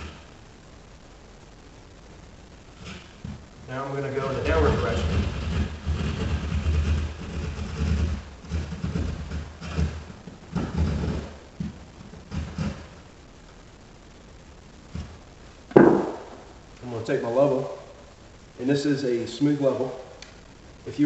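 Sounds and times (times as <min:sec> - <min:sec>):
hand saw cutting drywall: 0:04.1 - 0:11.7, 0:12.3 - 0:12.9
loud thump: 0:15.7 - 0:16.5.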